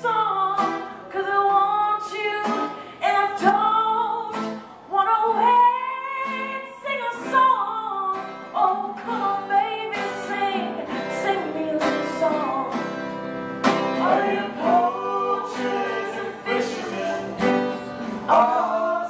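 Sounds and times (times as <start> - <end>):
woman singing: 0.0 - 12.9, 14.0 - 17.4
strummed acoustic guitar: 2.3 - 19.0
man singing: 14.0 - 17.6, 18.3 - 19.0.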